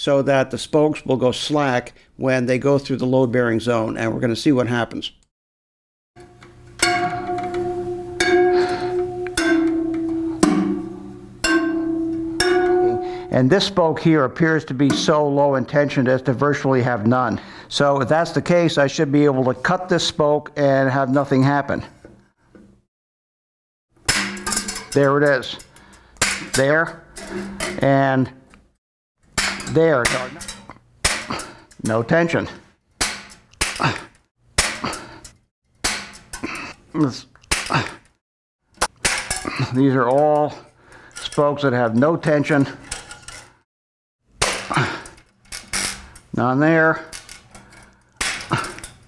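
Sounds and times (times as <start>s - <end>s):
wire cutters snapping spoke: 29.4s - 32.1s, 33.5s - 35.1s, 36.4s - 38.2s
cutters snipping steel spoke: 29.7s - 32.0s.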